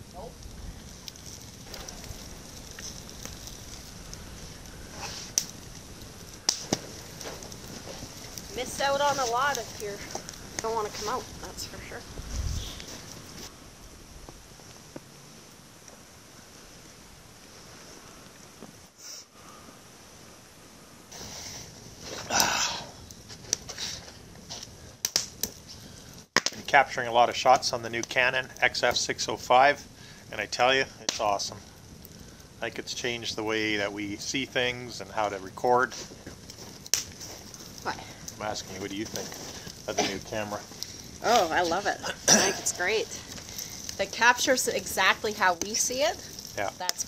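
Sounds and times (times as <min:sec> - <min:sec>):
campfire crackling: 0:00.0 - 0:47.0
sharp pops of fire: 0:00.0 - 0:47.0
steady fire hiss: 0:00.0 - 0:47.0.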